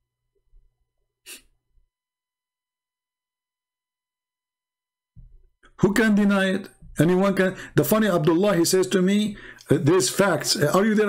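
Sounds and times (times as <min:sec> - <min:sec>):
person's sharp breath: 0:01.2 - 0:01.5.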